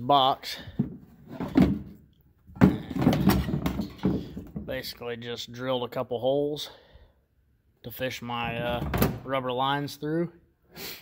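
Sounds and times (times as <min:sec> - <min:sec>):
plastic scraping and clattering: 0:00.7 - 0:04.8.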